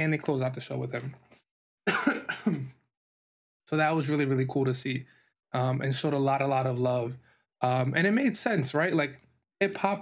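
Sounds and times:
man coughing: 1.9s - 2.8s.

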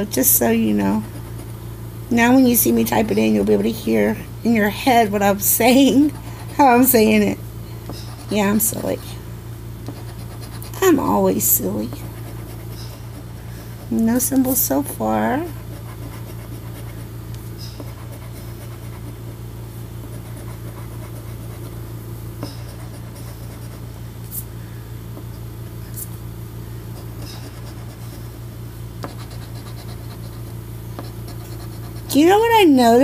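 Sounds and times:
coin scratching a ticket: 29.0s - 32.3s.

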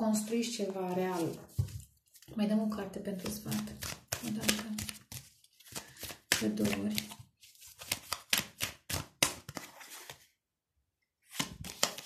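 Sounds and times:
person speaking: 0.0s - 5.1s, 6.3s - 7.2s
cards being shuffled: 0.3s - 2.4s, 3.2s - 10.2s, 11.3s - 12.0s.

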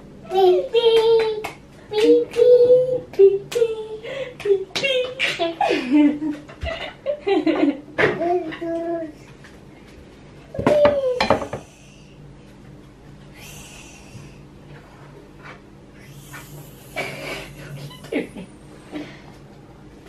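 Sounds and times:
hand claps: 0.8s - 3.8s, 4.4s - 5.0s.

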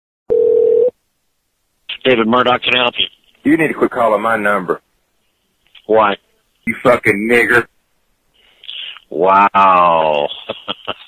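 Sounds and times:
telephone tone: 0.3s - 0.9s.

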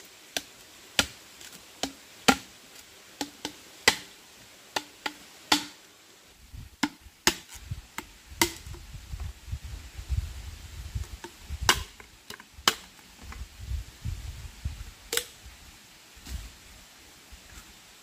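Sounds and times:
machete chopping bamboo: 0.3s - 2.5s, 3.2s - 4.2s, 4.8s - 5.8s, 6.8s - 8.8s, 11.1s - 12.9s.

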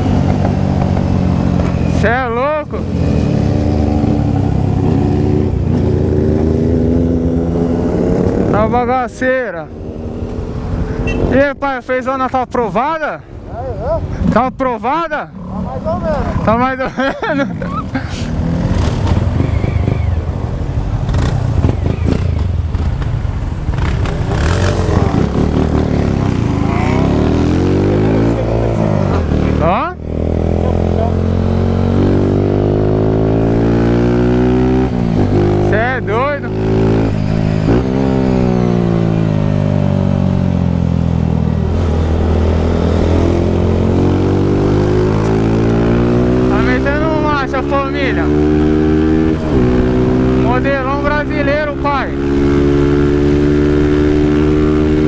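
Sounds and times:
motorcycle engine accelerating: 0.0s - 11.4s, 15.2s - 55.0s.

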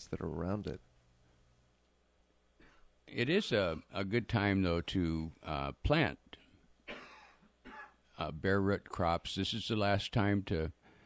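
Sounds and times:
man clearing throat: 6.9s - 8.0s.

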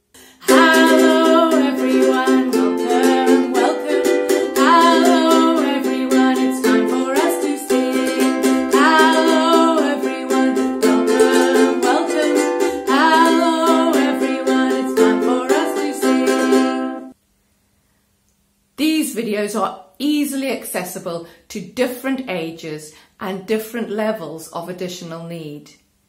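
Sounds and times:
ukulele strumming: 0.2s - 17.2s.

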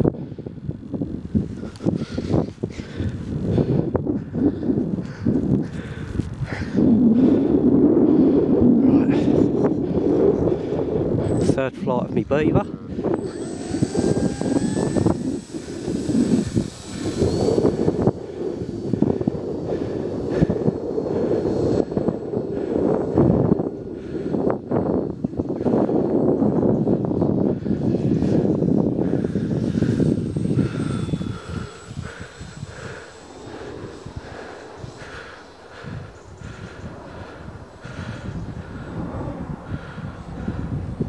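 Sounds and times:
model plane motor whine: 0.0s - 41.0s
wind buffeting microphone: 0.0s - 41.0s.

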